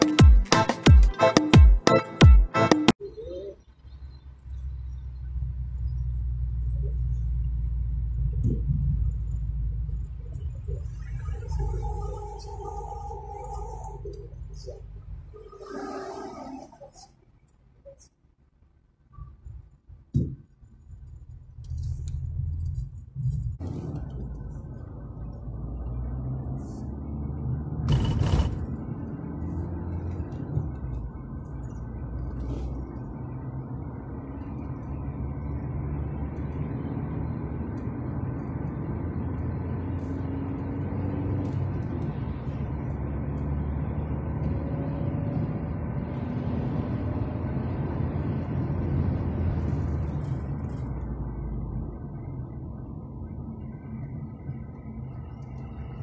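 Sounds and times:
heavy-beat intro music: 0.0s - 3.0s
street traffic rumble: 0.0s - 56.0s.

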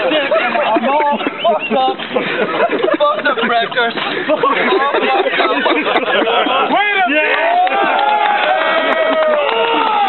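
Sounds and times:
men laughing: 0.0s - 8.4s
men cheering and yelling: 0.0s - 10.0s.

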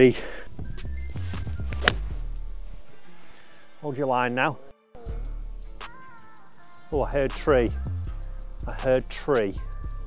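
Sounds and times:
background music: 0.0s - 10.0s
golf club striking ball: 1.3s - 2.3s.

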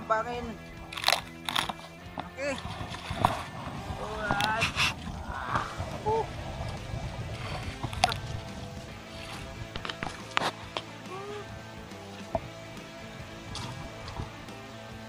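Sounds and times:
water sloshing: 0.6s - 11.0s.

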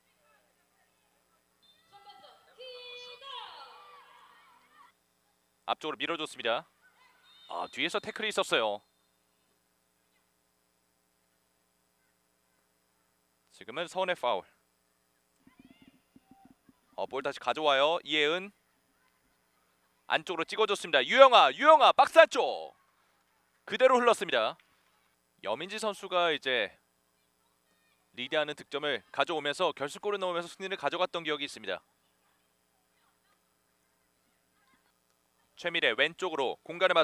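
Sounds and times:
soft low knocks: 15.4s - 17.0s.

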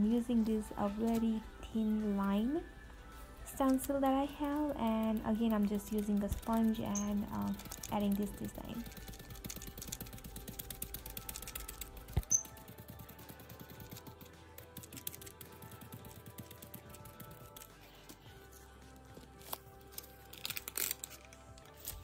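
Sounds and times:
quiet background music: 0.0s - 22.0s.

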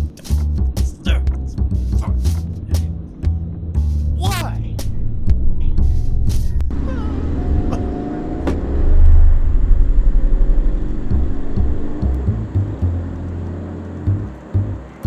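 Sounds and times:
motor vehicle rumbling: 0.0s - 15.0s.

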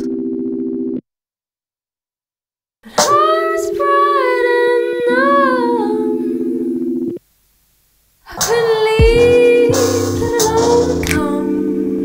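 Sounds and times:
woman singing high: 8.3s - 12.0s.

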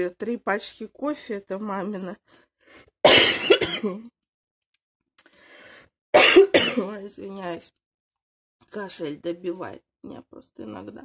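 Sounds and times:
woman coughing: 3.0s - 4.1s, 6.2s - 7.0s
woman clearing her throat: 3.1s - 4.1s, 6.2s - 6.9s.

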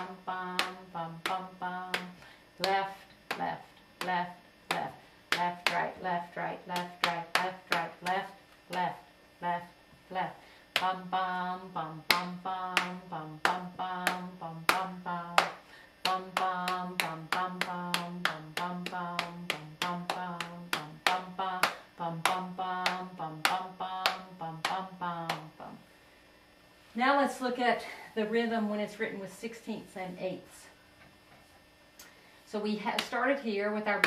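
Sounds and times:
woman singing bum syllable: 0.0s - 25.8s, 26.9s - 30.8s, 32.0s - 34.0s
sharp hand taps: 0.6s - 6.0s, 6.7s - 8.9s, 12.0s - 25.5s.

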